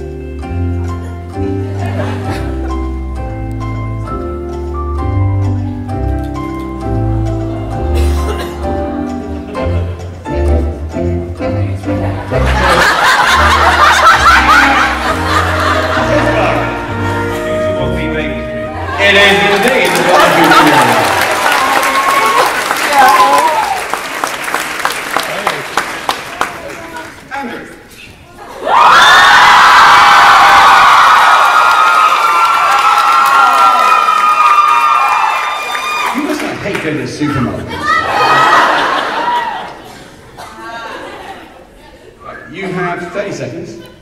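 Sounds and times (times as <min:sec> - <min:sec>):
background music: 0:00.0 - 0:23.7
audience laughing: 0:01.5 - 0:02.9, 0:08.0 - 0:10.2, 0:11.9 - 0:21.8, 0:37.6 - 0:42.2
audience cheering and screaming: 0:18.8 - 0:24.2, 0:28.4 - 0:36.4, 0:37.2 - 0:39.9.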